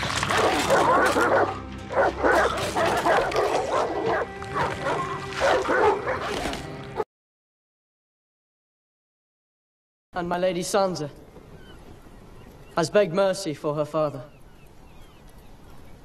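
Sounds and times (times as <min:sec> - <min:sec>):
hounds snarling and barking: 0:00.0 - 0:07.0
low musical drone: 0:00.0 - 0:07.0.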